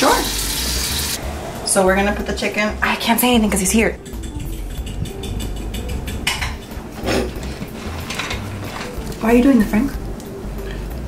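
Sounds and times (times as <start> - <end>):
dishes and utensils clattering: 3.8 - 9.7.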